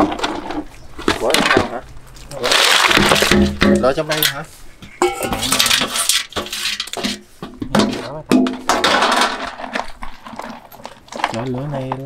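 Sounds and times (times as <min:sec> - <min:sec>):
snail shells clattering: 0:00.0 - 0:03.5, 0:08.9 - 0:12.0.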